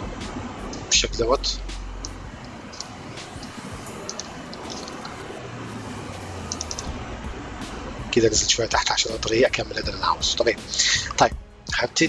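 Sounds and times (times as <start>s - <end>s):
mouse and keyboard clicks: 4.0s - 5.2s, 6.5s - 6.9s.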